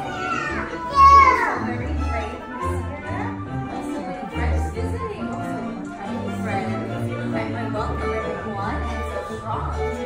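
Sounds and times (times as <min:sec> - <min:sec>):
child calling out loudly: 0:00.0 - 0:01.6
young children's voices: 0:00.0 - 0:01.8
soft background music: 0:00.0 - 0:10.0.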